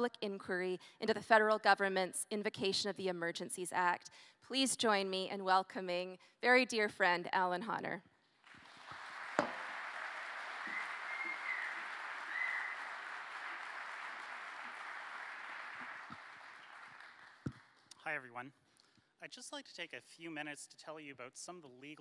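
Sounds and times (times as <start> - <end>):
audience applauding: 8.5 - 17.8
sharp knock: 9.4 - 9.6.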